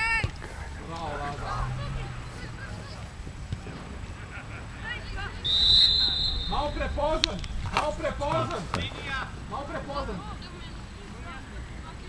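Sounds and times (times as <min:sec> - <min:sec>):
distant players shouting: 0:00.0 - 0:11.5
steady outdoor rumble: 0:00.0 - 0:12.0.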